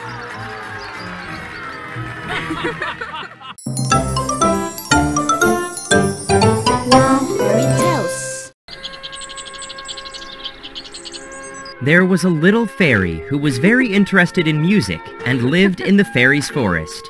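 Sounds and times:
chiming logo jingle: 3.6 - 8.4
soft background music: 3.7 - 17.0.

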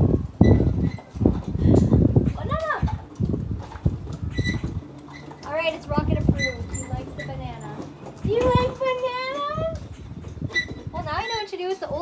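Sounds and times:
horse munching and crunching: 1.0 - 11.0.

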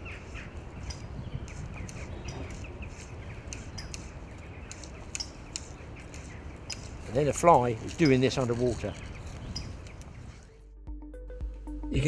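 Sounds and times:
small birds chirping: 0.0 - 10.6
wind buffeting microphone: 0.0 - 10.6.

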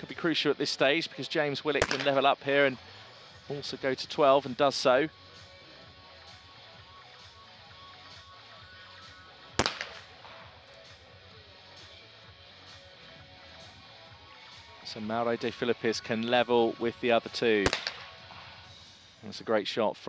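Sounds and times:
shotgun shot with echo: 1.8 - 2.3, 9.6 - 10.6, 17.6 - 18.6.

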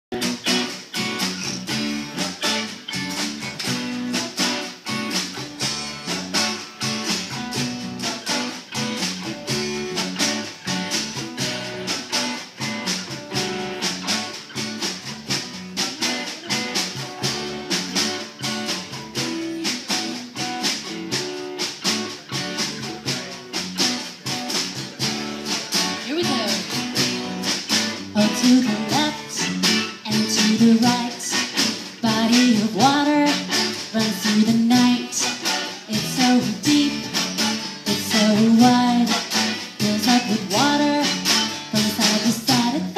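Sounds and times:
small live band playing: 0.1 - 42.9
strummed acoustic guitar: 0.1 - 42.9.

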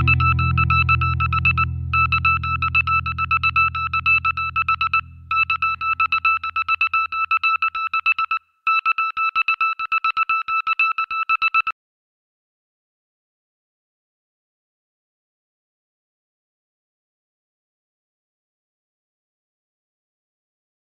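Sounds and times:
low guitar chord ringing: 0.0 - 6.2
high electronic beeping: 0.0 - 8.4.

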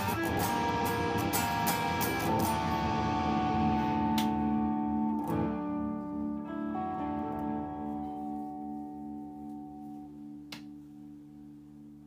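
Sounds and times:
electric guitar chord ringing: 0.0 - 10.8.

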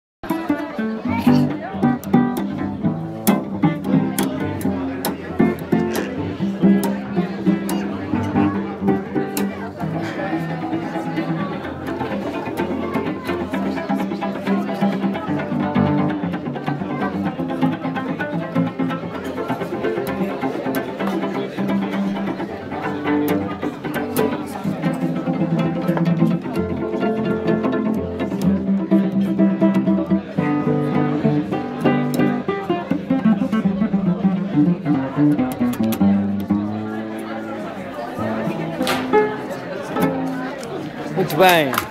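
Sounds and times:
guests talking in background: 0.2 - 41.9
solo cello melody: 0.3 - 37.5.

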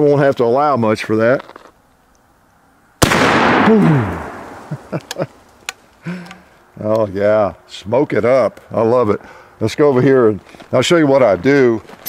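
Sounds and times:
rifle shot: 3.0 - 5.0.

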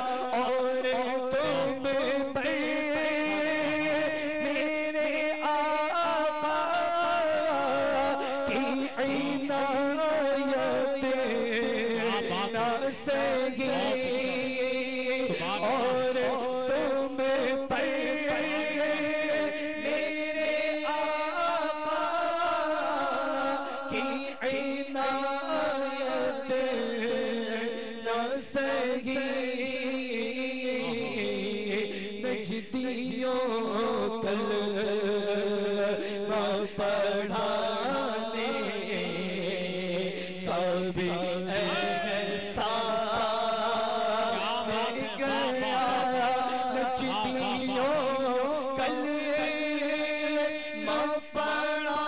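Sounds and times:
man singing devotional verse: 0.0 - 52.0.

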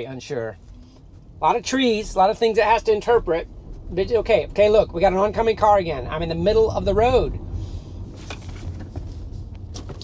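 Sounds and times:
road and tyre rumble: 0.0 - 10.0.

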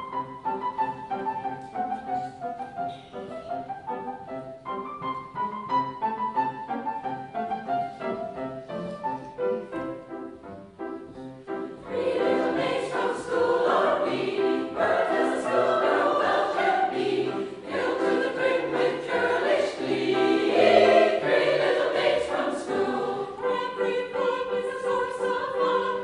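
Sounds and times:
choir singing: 11.7 - 26.0.

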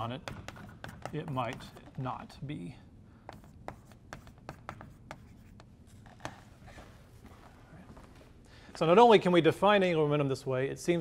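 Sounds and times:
chalk writing on chalkboard: 0.3 - 2.1, 3.2 - 6.8.

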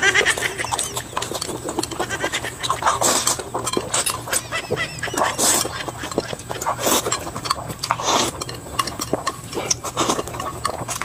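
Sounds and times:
noodles slurped and chewed: 0.0 - 11.0
lip-smacking clicks: 0.3 - 11.0.

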